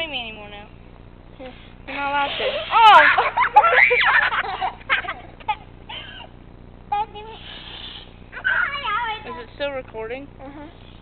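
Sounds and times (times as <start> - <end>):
breathy laughter: 2.8 - 6.3.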